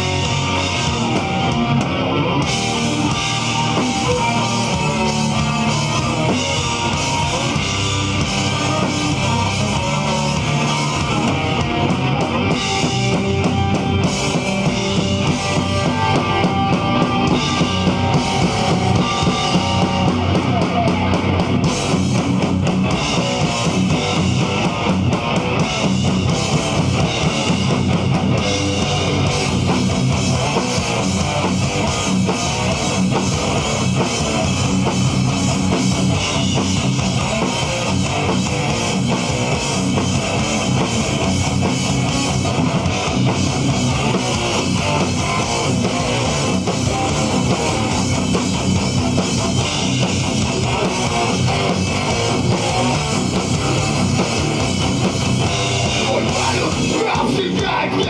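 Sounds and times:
bass guitar: 0.0s - 58.0s
distorted electric guitar: 0.0s - 58.0s
drum kit: 0.0s - 58.0s.

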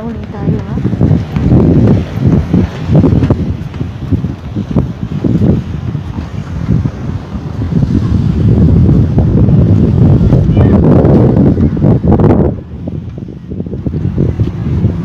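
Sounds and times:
wind on microphone: 0.0s - 15.0s.

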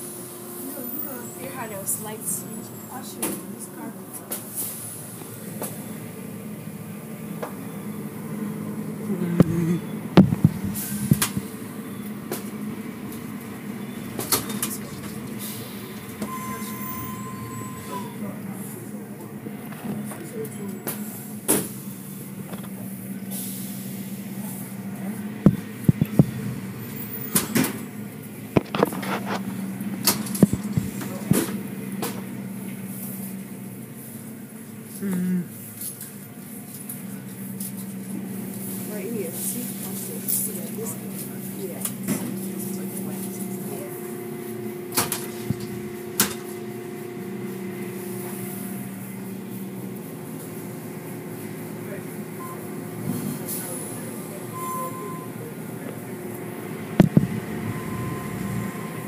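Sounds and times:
car wash machinery humming: 0.0s - 59.0s
knocks and slaps against car: 10.2s - 11.5s, 25.5s - 26.5s, 57.0s - 57.4s.

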